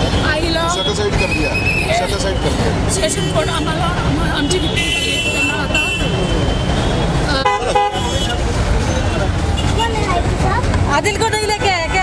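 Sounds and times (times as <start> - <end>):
vehicle horns honking: 0.0 - 2.5, 4.4 - 10.0
crowd chatter: 0.0 - 12.0
low traffic rumble: 0.0 - 12.0.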